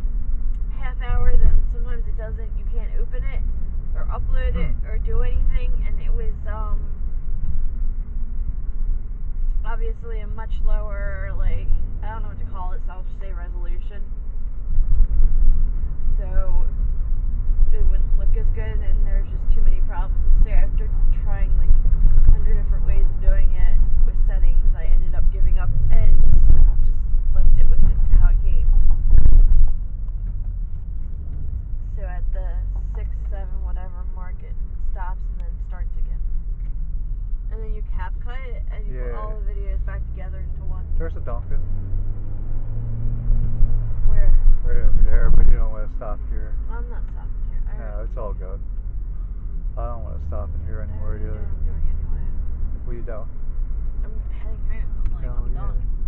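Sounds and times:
car road and engine rumble: 0:00.0 - 0:56.0
people talking: 0:00.7 - 0:03.4, 0:04.0 - 0:06.8, 0:09.6 - 0:14.0, 0:16.1 - 0:16.7, 0:17.7 - 0:29.0, 0:31.9 - 0:36.2, 0:37.5 - 0:41.6, 0:44.1 - 0:48.6, 0:49.8 - 0:52.3, 0:52.9 - 0:53.3, 0:54.0 - 0:55.9.

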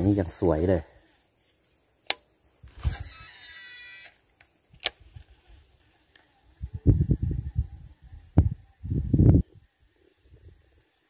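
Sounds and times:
reel spool whirring: 0:02.8 - 0:04.2.

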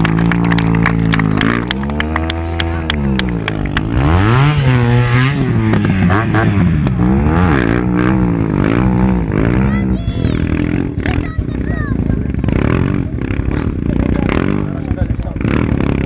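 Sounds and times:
motorcycle engine revving: 0:00.0 - 0:16.0
people talking: 0:01.3 - 0:03.5, 0:09.4 - 0:15.7.

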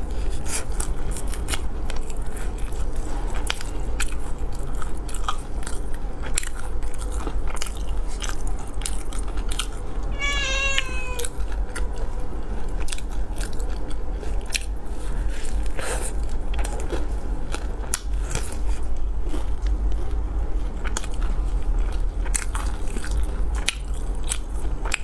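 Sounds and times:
crunchy chewing of fried chicken: 0:00.0 - 0:25.0
high wavering cry: 0:10.1 - 0:11.4.

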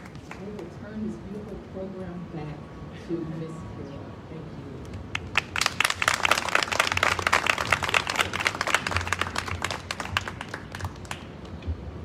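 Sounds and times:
crowd applauding: 0:05.1 - 0:11.4.

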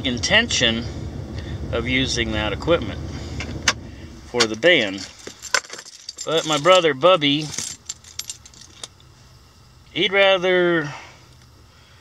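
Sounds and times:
low hum inside vehicle cab: 0:00.0 - 0:12.0
light clicks and clinks: 0:04.8 - 0:09.0.

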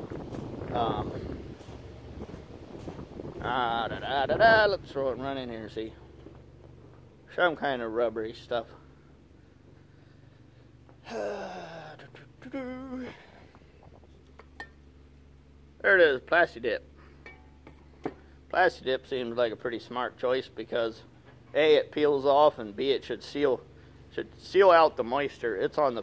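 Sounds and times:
footsteps on gravel: 0:00.0 - 0:04.2
low wind rumble on microphone: 0:00.0 - 0:06.2
person humming: 0:11.0 - 0:13.4.

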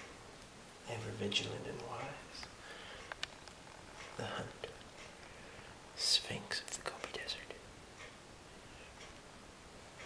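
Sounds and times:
man whispering: 0:00.8 - 0:02.6, 0:04.1 - 0:04.8, 0:06.0 - 0:07.7.

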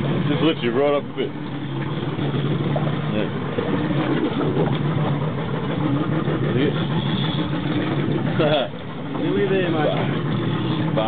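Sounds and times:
boat motor idling: 0:00.0 - 0:11.0.

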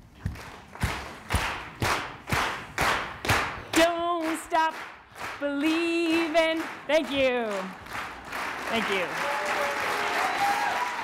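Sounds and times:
hand clapping with echo: 0:00.3 - 0:11.0.

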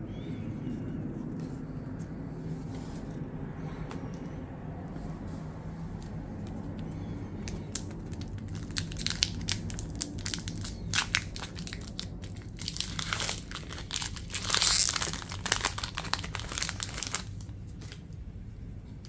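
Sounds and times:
foil wrapper tearing: 0:07.4 - 0:18.0
foil wrapper crinkling: 0:07.4 - 0:18.1.

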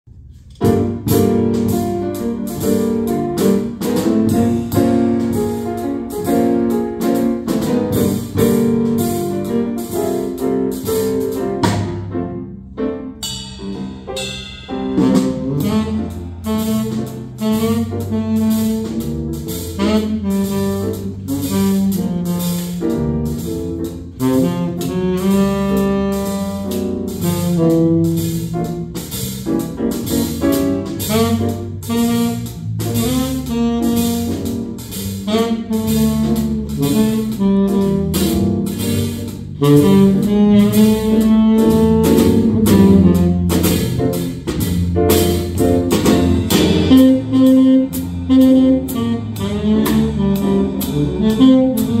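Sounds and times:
jazz combo playing: 0:00.1 - 0:52.0
drums on cymbals: 0:00.4 - 0:12.2, 0:13.2 - 0:52.0
saxophone: 0:15.0 - 0:23.0, 0:24.2 - 0:28.1, 0:31.0 - 0:38.7, 0:39.6 - 0:43.8, 0:46.6 - 0:52.0.

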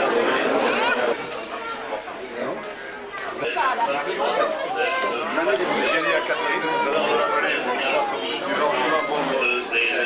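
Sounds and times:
overlapping chatter of people: 0:00.0 - 0:10.0.

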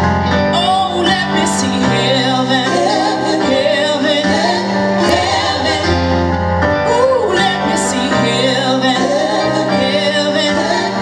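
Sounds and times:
guitar: 0:00.0 - 0:11.0
keyboard: 0:00.0 - 0:11.0
backing singers: 0:01.4 - 0:11.0.

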